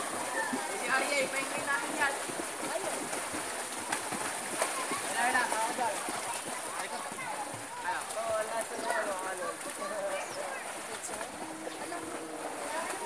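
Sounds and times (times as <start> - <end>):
people chattering: 0.0 - 3.8, 4.5 - 13.0.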